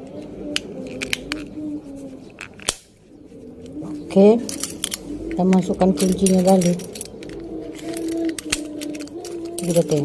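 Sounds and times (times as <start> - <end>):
plastic casing snapping shut: 2.4 - 2.9.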